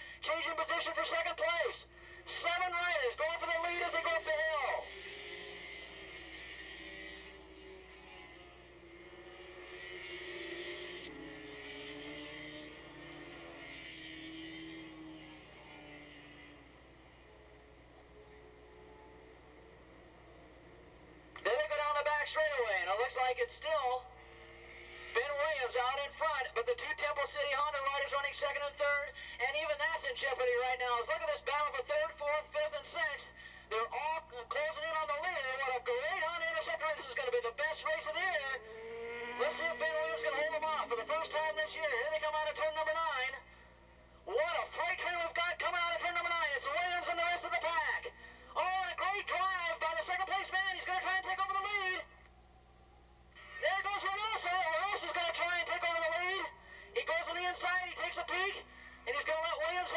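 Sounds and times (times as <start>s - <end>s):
man commentating over radio feed: 0.0s - 17.2s, 21.3s - 43.6s, 44.2s - 52.2s, 53.3s - 59.9s.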